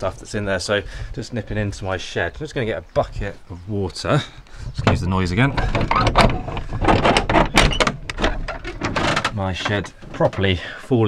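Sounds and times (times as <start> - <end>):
wooden shed door opening: 4.8 - 10.6.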